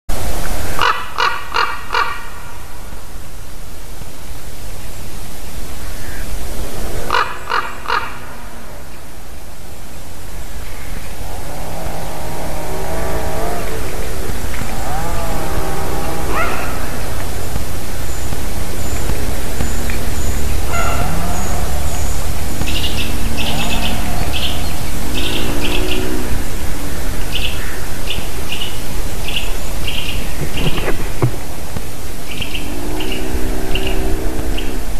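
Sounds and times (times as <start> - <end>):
ravens calling: 0.6 - 3.0, 5.7 - 34.9
steady low rumble: 2.4 - 34.9.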